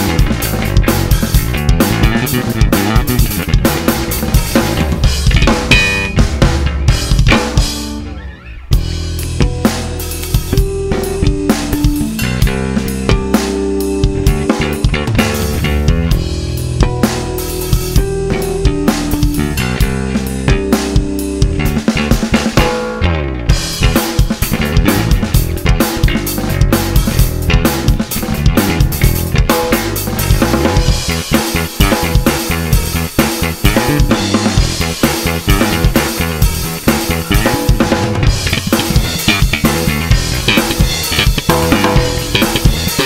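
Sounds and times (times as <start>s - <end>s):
drum-kit backing track: 0.0s - 43.0s
electric bass line: 0.0s - 43.0s.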